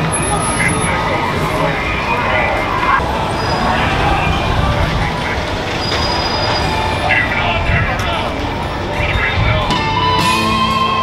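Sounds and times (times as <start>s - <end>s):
car traffic driving past: 0.0s - 7.5s
people talking: 0.0s - 10.9s.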